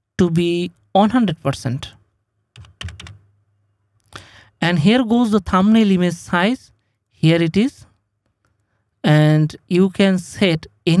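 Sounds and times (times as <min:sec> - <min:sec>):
computer keyboard keystrokes: 0:02.5 - 0:03.2.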